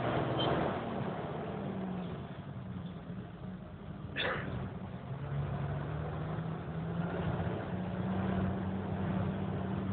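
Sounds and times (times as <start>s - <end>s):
road noise: 0.0s - 9.9s
vehicle engine humming: 0.0s - 9.9s.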